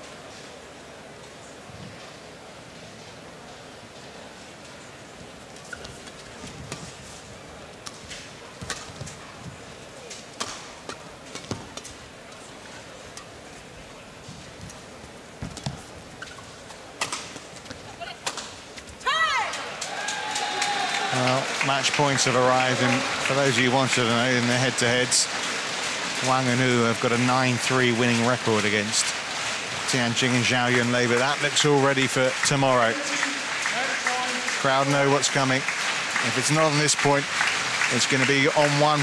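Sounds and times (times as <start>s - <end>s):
low hum of crowd: 0.0s - 39.0s
racket hitting shuttlecock: 17.0s - 18.6s
crowd cheering and applause: 19.1s - 39.0s.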